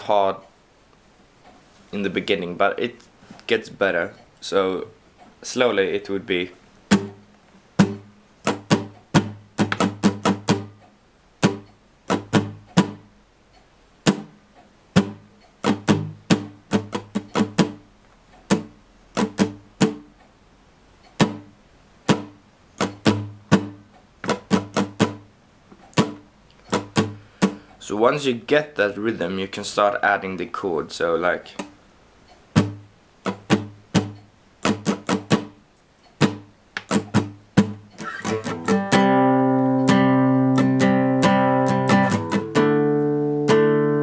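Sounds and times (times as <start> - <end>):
muted acoustic guitar strumming: 6.3 - 10.8, 11.4 - 13.2, 14.0 - 20.2, 21.2 - 25.3, 25.9 - 27.7, 32.5 - 35.6, 36.2 - 44.0.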